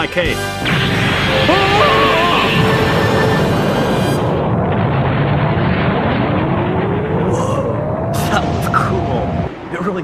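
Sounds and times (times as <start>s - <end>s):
music: 0.0s - 4.4s
explosion blast sound effect: 0.6s - 9.8s.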